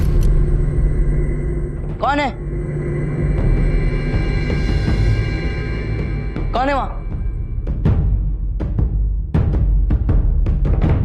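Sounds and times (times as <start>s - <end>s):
low rumbling drone: 0.0s - 8.9s.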